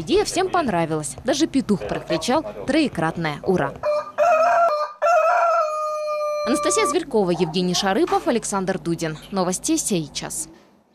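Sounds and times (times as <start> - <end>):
rooster crowing: 3.8 - 7.0.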